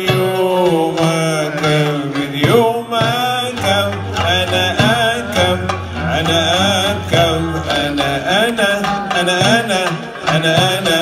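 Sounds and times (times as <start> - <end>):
hand drum: 0.0 - 11.0
man singing ornamented melody: 0.0 - 11.0
oud: 0.0 - 11.0.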